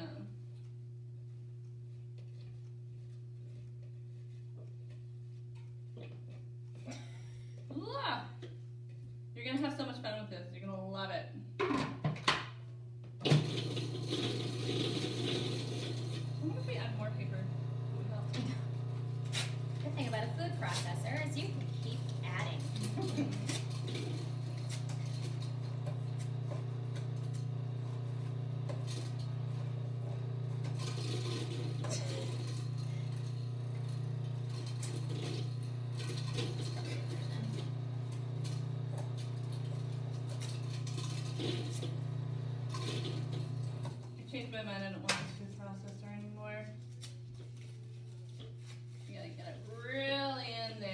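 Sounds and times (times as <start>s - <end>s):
food processor running: 13.2s - 45.5s.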